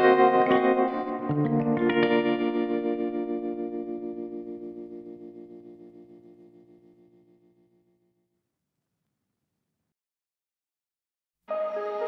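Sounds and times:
plucked guitar notes: 0:00.0 - 0:07.3
ringing guitar chord: 0:00.0 - 0:07.5.

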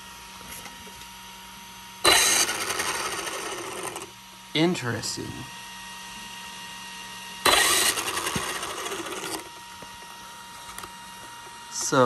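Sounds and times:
toy truck electric motor rattling: 0:02.0 - 0:04.1, 0:07.4 - 0:09.6.

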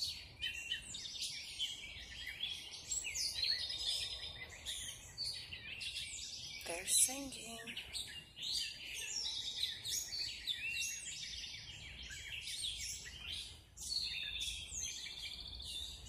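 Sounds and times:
songbirds chorus: 0:00.0 - 0:16.0.

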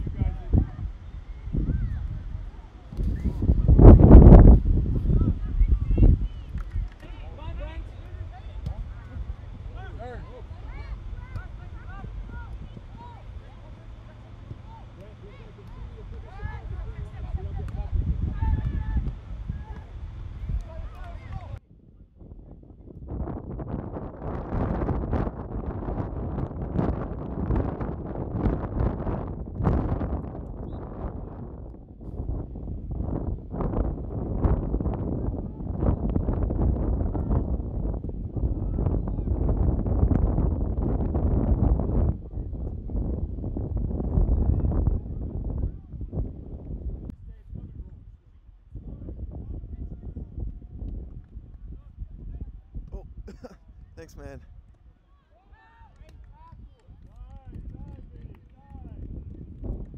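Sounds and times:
wind gusts on microphone: 0:00.0 - 0:14.7, 0:16.2 - 0:54.7, 0:56.0 - 0:59.9.

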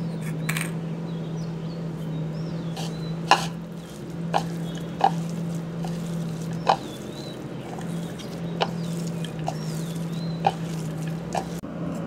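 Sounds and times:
steady low hum: 0:00.0 - 0:12.0
meat squelching in hands: 0:02.8 - 0:11.6.

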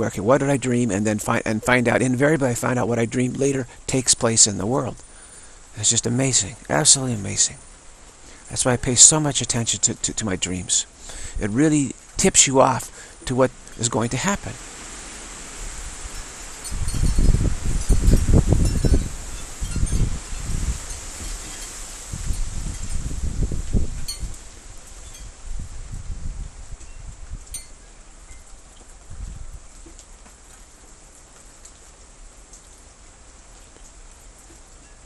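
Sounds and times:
wind buffeting microphone: 0:14.5 - 0:27.7, 0:29.0 - 0:29.7
light high ticks and tinkles: 0:16.0 - 0:23.1, 0:24.0 - 0:25.4, 0:26.8 - 0:29.0, 0:33.6 - 0:35.0.

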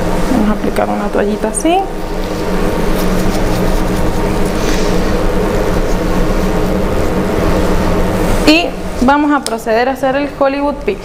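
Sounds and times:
mechanical hum with hiss: 0:00.0 - 0:11.0
woman speaking: 0:00.3 - 0:02.0, 0:08.4 - 0:11.0.

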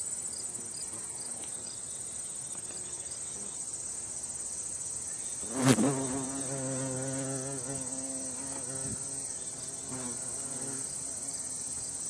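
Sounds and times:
wasp wing buzz: 0:05.0 - 0:12.0.

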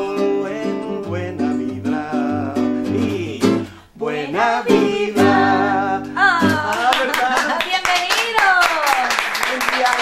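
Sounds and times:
person singing long notes: 0:00.0 - 0:07.0
hand clapping: 0:06.5 - 0:10.0.

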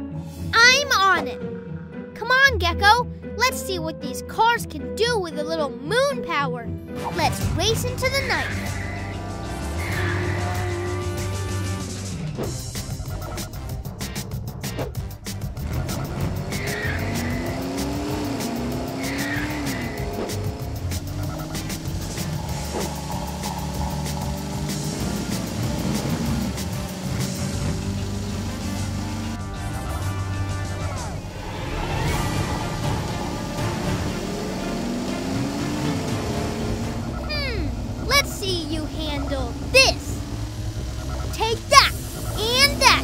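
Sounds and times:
background music: 0:00.0 - 0:43.0
cartoon engine revs: 0:07.1 - 0:13.6, 0:15.5 - 0:43.0
tire squeals: 0:07.7 - 0:43.0.

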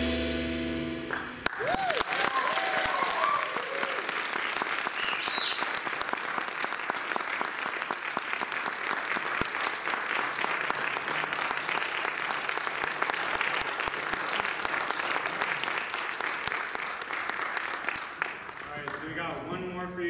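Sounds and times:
audience applauding: 0:01.1 - 0:19.2
whoops and cheers: 0:01.4 - 0:04.2
short high whistle: 0:05.0 - 0:05.7.

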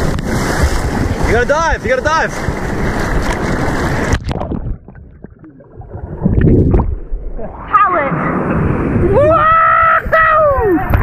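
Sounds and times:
surf breaking and splashing: 0:00.0 - 0:11.0.

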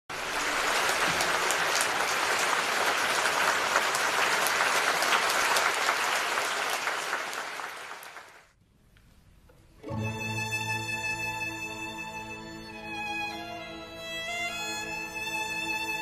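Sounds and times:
audience applause: 0:00.1 - 0:08.5.

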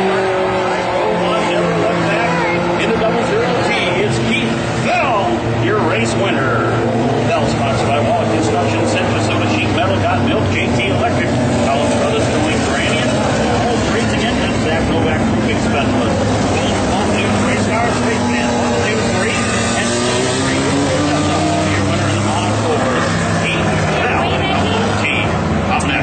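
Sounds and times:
indistinct voices: 0:00.0 - 0:26.0
race car engines: 0:00.0 - 0:26.0.

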